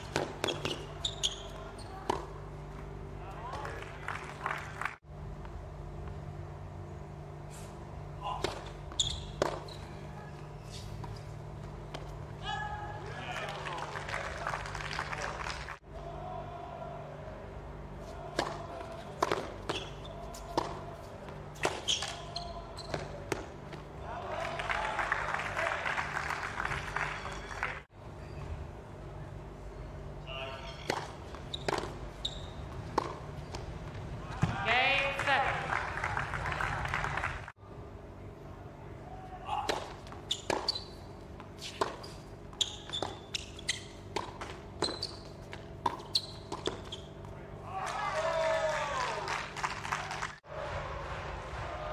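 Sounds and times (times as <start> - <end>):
tennis ball bounces: 0.0 - 0.9, 2.0 - 2.4, 8.4 - 9.8, 18.3 - 22.2, 30.8 - 32.0, 32.6 - 34.7, 39.6 - 47.4
spectator applause: 3.6 - 5.0, 13.0 - 15.8, 24.0 - 27.9, 34.9 - 37.5, 47.7 - 51.9.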